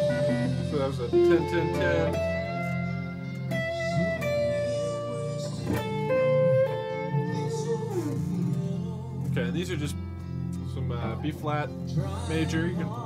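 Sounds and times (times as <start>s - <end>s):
electric guitar single notes: 0.0s - 13.0s.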